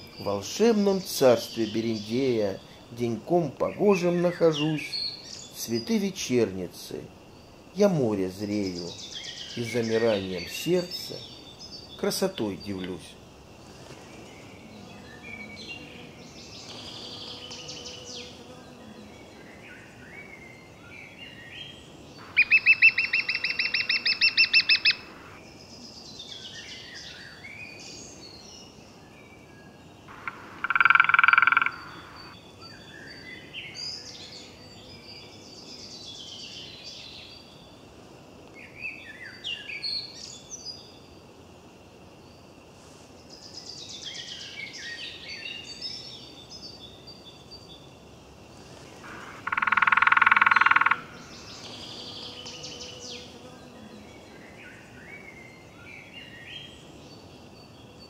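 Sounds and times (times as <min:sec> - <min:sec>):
woodland birdsong: 0:00.0 - 0:41.3, 0:42.2 - 0:58.0
rapid pulsed bird trill: 0:22.2 - 0:25.4, 0:30.1 - 0:33.2, 0:49.0 - 0:53.1.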